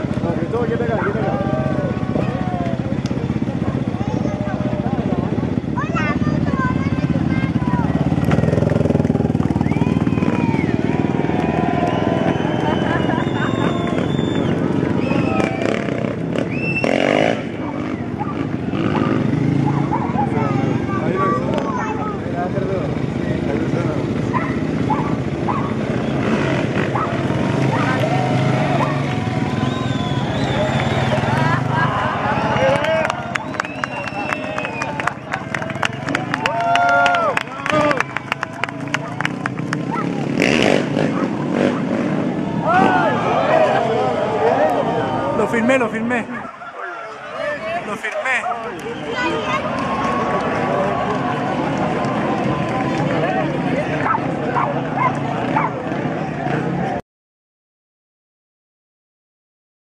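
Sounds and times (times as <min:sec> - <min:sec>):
motorcycle engine running: 0:00.0 - 0:44.2
crowd chattering and calling out: 0:00.0 - 0:57.0.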